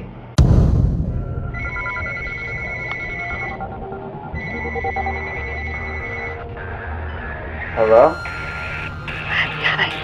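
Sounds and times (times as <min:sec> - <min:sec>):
mobile phone ringing: 0:01.6 - 0:06.5.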